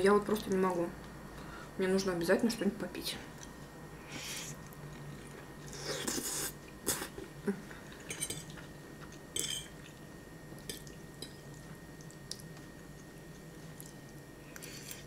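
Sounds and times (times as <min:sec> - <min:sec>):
slurping and chewing spaghetti: 0:04.1 - 0:07.2, 0:10.6 - 0:15.0.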